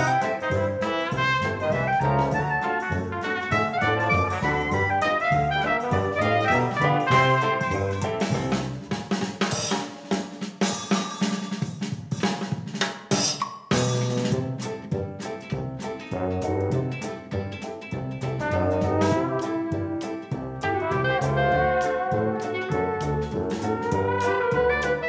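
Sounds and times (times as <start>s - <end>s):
upbeat music with drums and brass: 0.0s - 25.0s.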